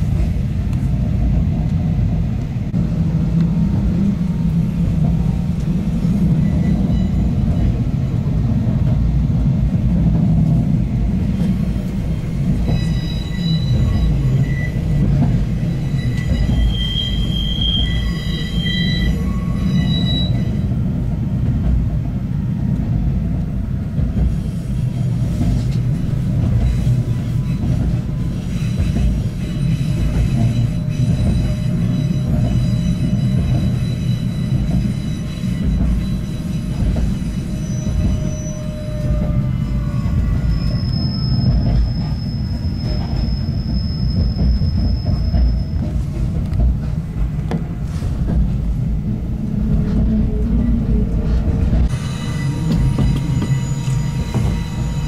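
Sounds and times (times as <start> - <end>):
railcar wheels rumbling: 0.0 - 55.0
high-pitched wheel squeal: 6.1 - 8.2, 12.4 - 20.7, 26.5 - 46.1, 51.8 - 55.0.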